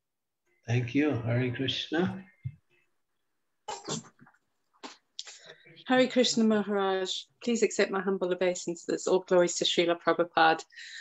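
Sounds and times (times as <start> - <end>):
person coughing: 3.7 - 4.2.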